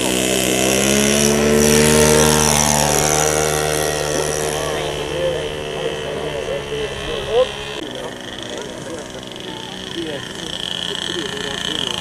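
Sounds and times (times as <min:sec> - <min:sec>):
small model engine at high throttle: 0:00.0 - 0:12.0.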